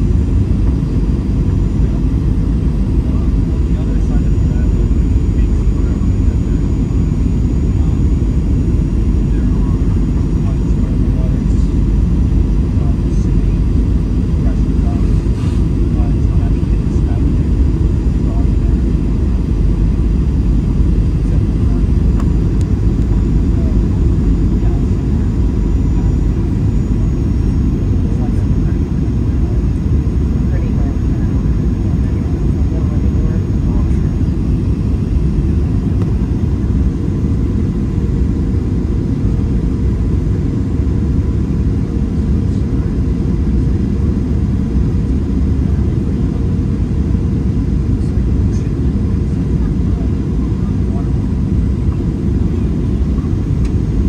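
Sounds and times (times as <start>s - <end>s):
airplane cabin rumble: 0.0s - 54.0s
faint high whine: 0.0s - 54.0s.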